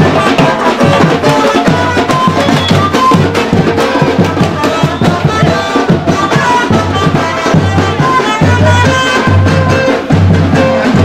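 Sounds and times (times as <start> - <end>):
melody over drums: 0.0 - 11.0
samba drums beating: 0.0 - 11.0.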